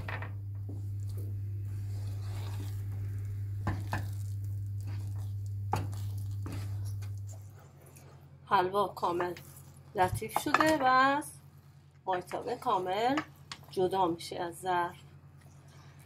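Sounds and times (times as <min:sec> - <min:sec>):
steady low hum: 0:00.0 - 0:16.0
wooden spatula scraping a pan: 0:01.7 - 0:08.3.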